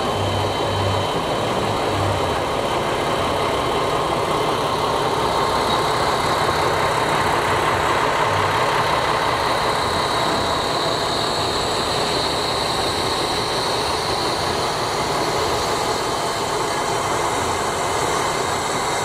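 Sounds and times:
railway engine running and hissing: 0:00.0 - 0:19.0.

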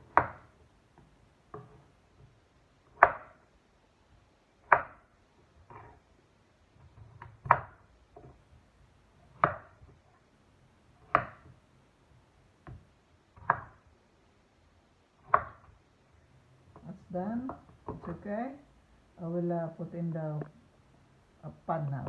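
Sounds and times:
knife chopping on cutting board: 0:02.9 - 0:03.4, 0:04.6 - 0:05.0, 0:09.3 - 0:09.8, 0:11.0 - 0:11.5.

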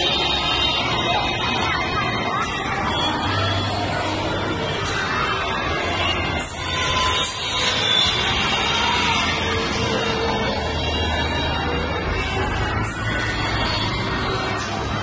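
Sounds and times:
dance music over loudspeakers: 0:00.0 - 0:15.0.

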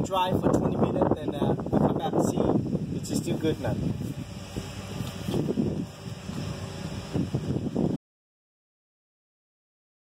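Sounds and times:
wind buffeting microphone: 0:00.0 - 0:08.0.

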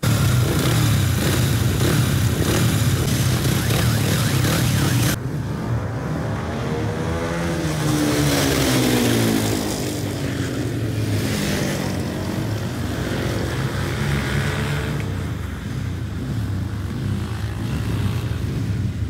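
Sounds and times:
motorcycle passing by: 0:00.0 - 0:19.0
racing motorcycle engines: 0:00.0 - 0:19.0.

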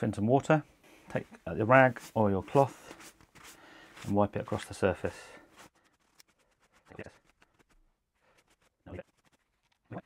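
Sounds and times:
paper towel rustling: 0:01.1 - 0:10.0.

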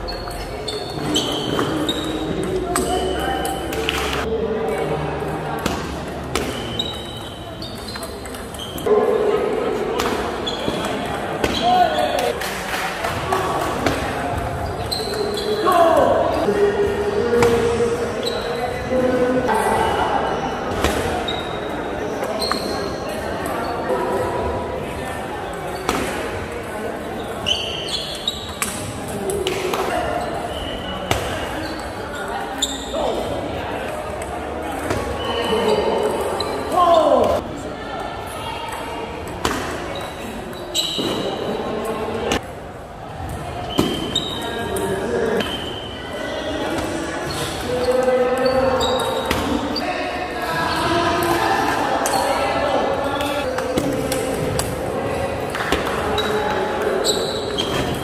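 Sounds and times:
people talking: 0:00.0 - 0:58.0.

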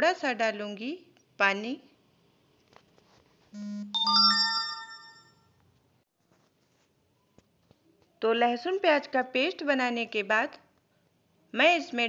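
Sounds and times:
electronic chime: 0:03.6 - 0:05.4.

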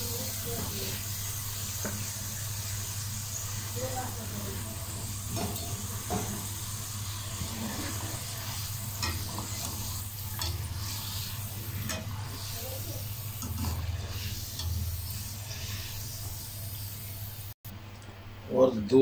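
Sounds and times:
potatoes sizzling in hot fat: 0:00.0 - 0:17.6.

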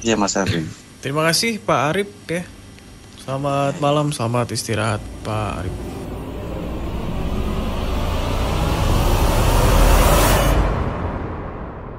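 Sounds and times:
deep rumble and whoosh: 0:04.6 - 0:11.9.

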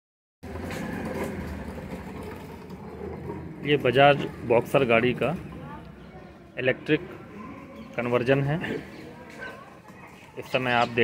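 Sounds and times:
low rumble of vehicle noise: 0:00.4 - 0:08.0.

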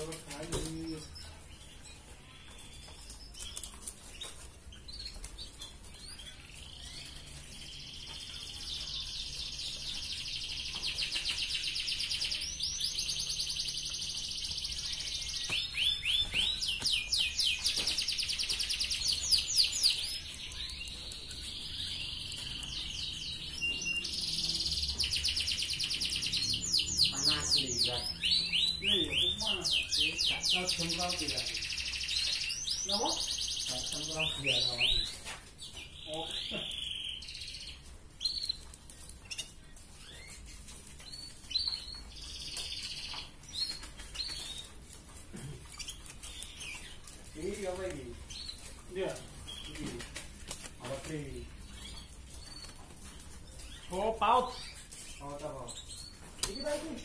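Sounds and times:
canary singing trills: 0:00.0 - 0:57.0.

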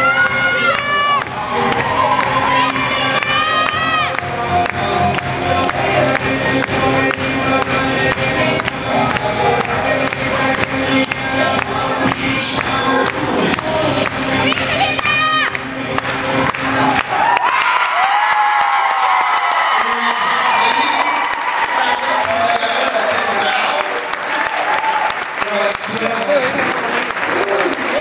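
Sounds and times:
audience cheering and whooping: 0:00.0 - 0:04.3, 0:16.8 - 0:28.0
funk dance music over speakers: 0:00.0 - 0:17.2.

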